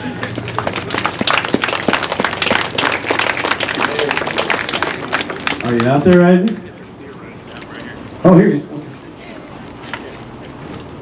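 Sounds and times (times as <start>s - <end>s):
crowd applauding: 0.0s - 6.8s.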